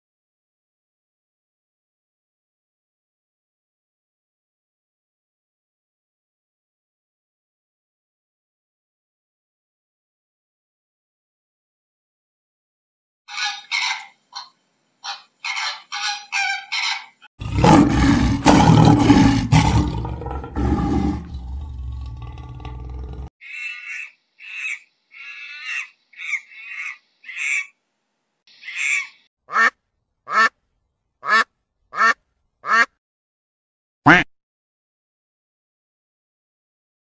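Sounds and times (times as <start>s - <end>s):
loud low growl: 17.4s - 23.3s.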